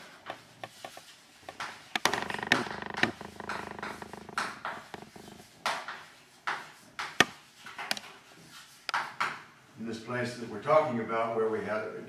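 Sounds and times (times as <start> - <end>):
chalk on blackboard: 0.3 - 1.8, 5.1 - 9.4.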